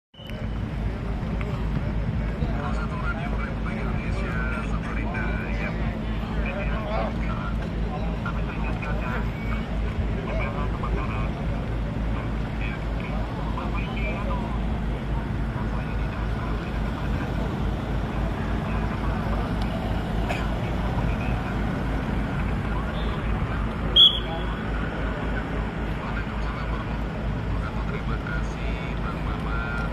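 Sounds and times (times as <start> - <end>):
indistinct voices talking: 0.2 - 29.9
vehicle engines idling: 0.2 - 29.9.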